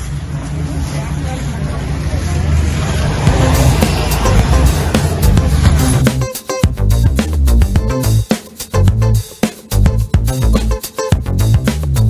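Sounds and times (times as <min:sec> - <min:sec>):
background music with low bass: 0:03.2 - 0:12.0.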